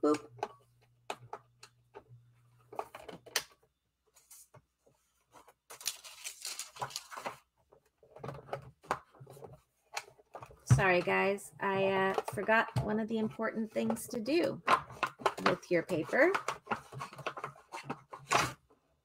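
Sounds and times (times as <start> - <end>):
paper rustling: 4.1 - 7.5.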